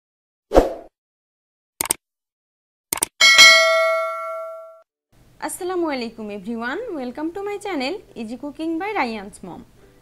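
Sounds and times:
double mouse click: 0:01.8 - 0:02.0
notification bell ding: 0:03.2 - 0:04.8.

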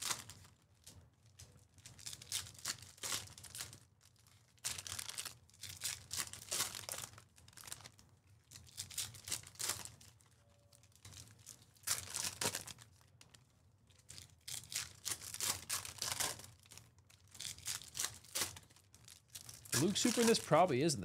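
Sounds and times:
foil wrappers crinkling and tearing: 0:00.0 - 0:21.0.

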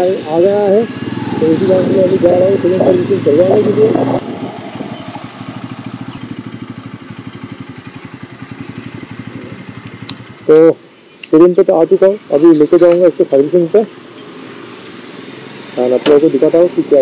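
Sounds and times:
man talking: 0:00.0 - 0:04.2, 0:10.5 - 0:13.9, 0:15.8 - 0:17.0
motorcycle engine puttering: 0:00.9 - 0:10.7.

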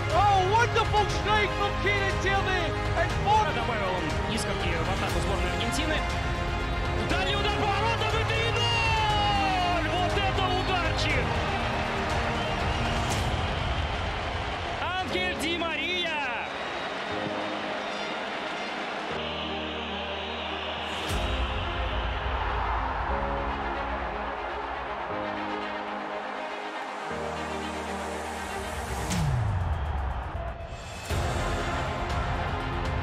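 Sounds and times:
epic orchestral trailer music: 0:00.0 - 0:33.0.

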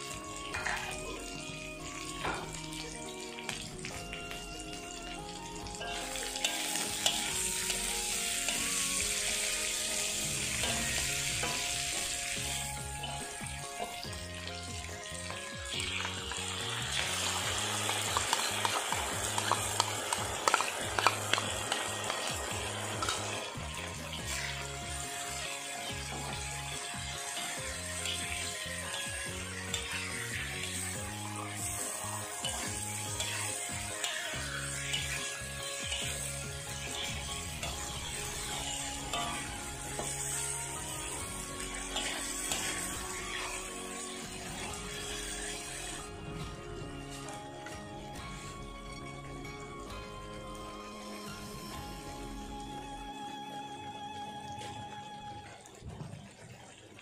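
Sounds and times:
vegetables sizzling in a wok: 0:00.0 - 0:52.7
background music: 0:00.0 - 0:57.0
metal spatula scraping a pan: 0:00.5 - 0:01.0, 0:05.9 - 0:14.6, 0:17.8 - 0:46.1.

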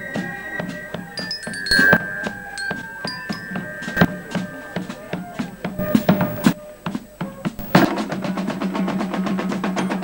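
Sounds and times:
high bell-like notes: 0:01.2 - 0:06.6.

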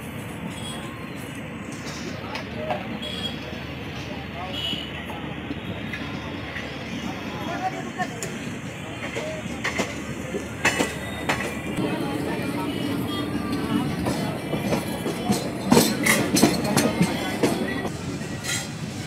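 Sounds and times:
train wheel rumble: 0:00.0 - 0:19.0
wheels clacking over rail joints: 0:08.1 - 0:18.9.

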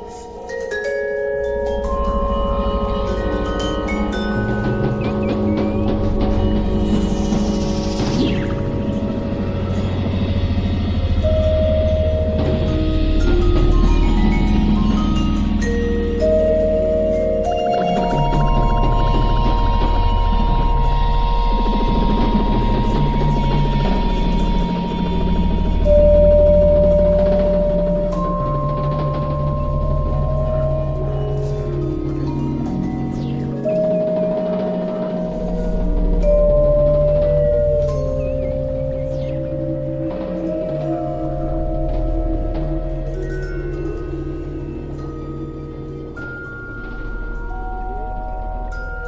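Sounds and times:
vibraphone notes ringing: 0:00.0 - 0:06.1, 0:11.2 - 0:20.3
low pulsing electronic drone: 0:00.0 - 0:49.0.

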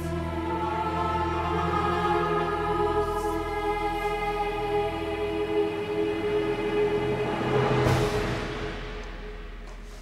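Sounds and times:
choir singing sustained chords: 0:00.0 - 0:09.6.

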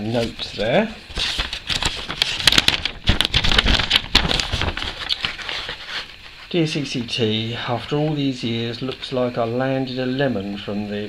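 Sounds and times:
paper letter rustling and crackling: 0:00.1 - 0:06.4.

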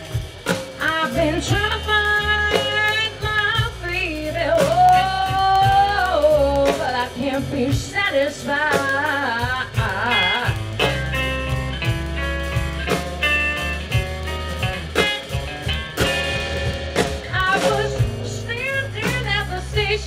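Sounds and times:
live blues band playing: 0:00.0 - 0:20.0.

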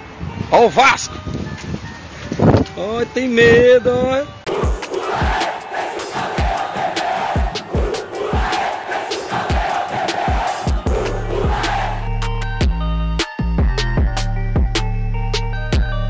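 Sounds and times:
crowd chanting over a beat: 0:04.5 - 0:12.3
bass and synth riff: 0:09.5 - 0:16.0.

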